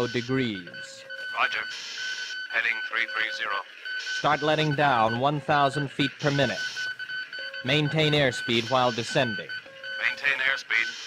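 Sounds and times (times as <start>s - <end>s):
radio static hiss: 1.3s - 4.7s, 6.0s - 7.0s, 10.0s - 11.0s
tinny radio voice: 10.0s - 11.0s.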